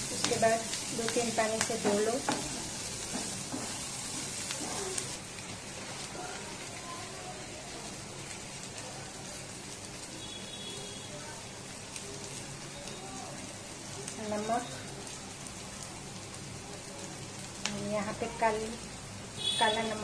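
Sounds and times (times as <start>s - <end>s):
chillies sizzling in oil: 0.0s - 20.0s.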